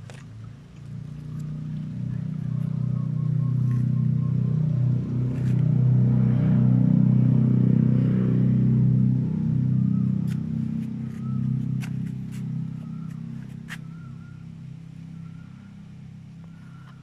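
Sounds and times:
low engine-like hum: 0:00.0 - 0:17.0.

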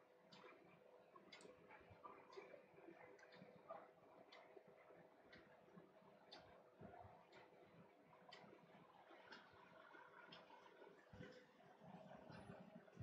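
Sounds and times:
soft regular ticks: 0:00.2 - 0:13.0.

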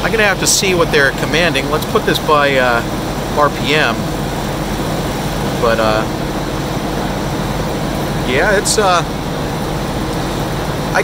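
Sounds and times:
mechanical hum: 0:00.0 - 0:11.0
noisy hiss: 0:00.0 - 0:11.0.

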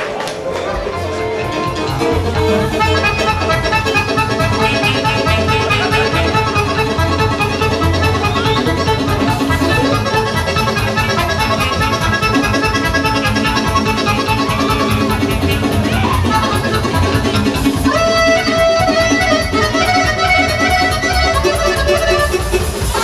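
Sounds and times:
accordion: 0:00.0 - 0:23.0
folk band playing dance tune: 0:00.0 - 0:23.0
violin: 0:00.2 - 0:23.0.

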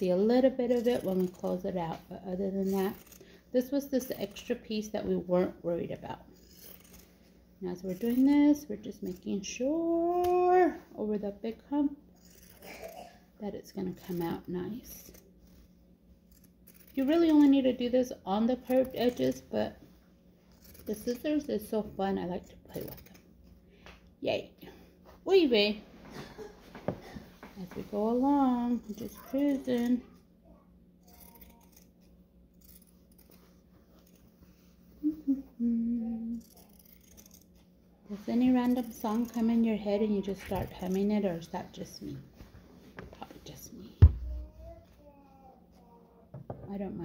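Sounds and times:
shears snipping fabric: 0:00.0 - 0:10.8, 0:12.1 - 0:13.0, 0:13.7 - 0:15.6, 0:16.3 - 0:19.8, 0:20.5 - 0:23.3, 0:27.6 - 0:30.0, 0:31.0 - 0:34.8, 0:36.1 - 0:42.0
woman humming: 0:35.0 - 0:36.4.

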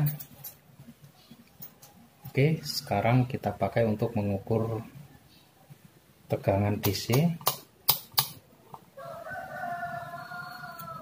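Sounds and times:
rooster crowing: 0:09.0 - 0:11.0.

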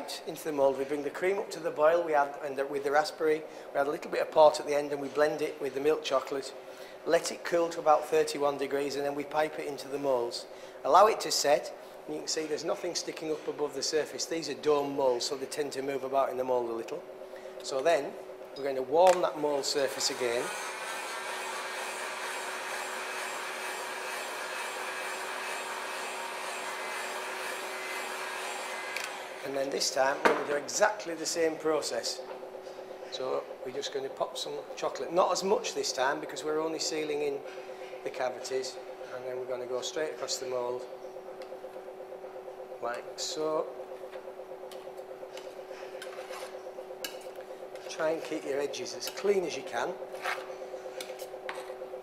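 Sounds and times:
fast-pulsing machine hum: 0:10.2 - 0:52.0.

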